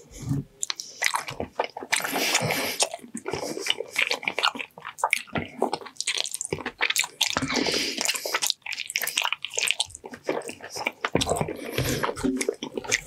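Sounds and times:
sticky mouth sounds: 0:00.0 - 0:13.0
wet squishy chewing: 0:00.1 - 0:13.0.

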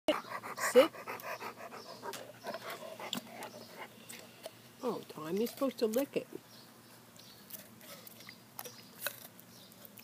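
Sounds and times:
dog panting: 0:00.1 - 0:04.0.

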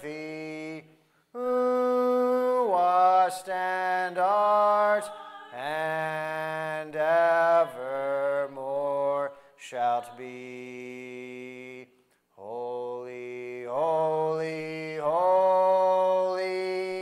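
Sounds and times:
congregation singing a hymn: 0:00.0 - 0:00.8, 0:01.4 - 0:17.0.

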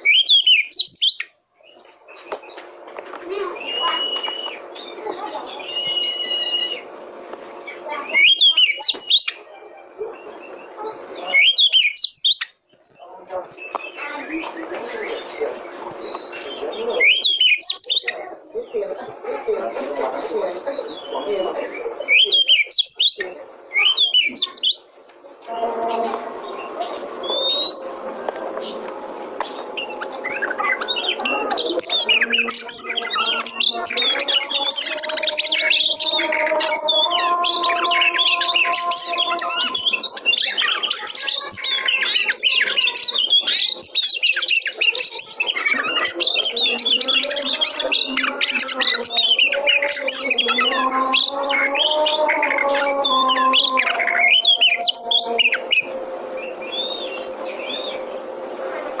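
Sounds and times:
bird singing whistles and chatter: 0:00.0 - 0:02.7, 0:03.3 - 0:07.0, 0:07.6 - 0:18.8, 0:20.2 - 0:24.9, 0:25.5 - 0:28.0, 0:28.6 - 0:59.0.

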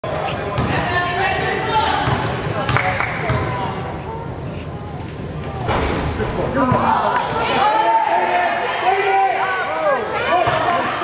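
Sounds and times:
basketball bouncing on gym floor: 0:02.0 - 0:03.5.

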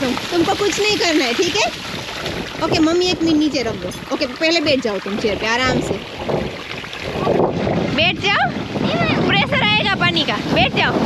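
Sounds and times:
voices: 0:00.0 - 0:01.8, 0:02.6 - 0:06.0, 0:07.2 - 0:11.0
water gushing from pipe: 0:00.0 - 0:11.0.

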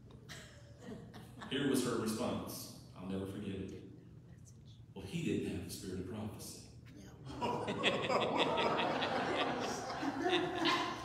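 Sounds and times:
congregation laughing: 0:07.3 - 0:11.0.

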